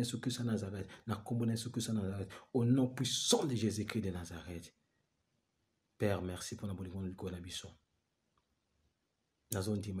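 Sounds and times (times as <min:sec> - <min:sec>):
man speaking: 0:00.0 - 0:04.8, 0:06.0 - 0:07.8, 0:09.5 - 0:10.0.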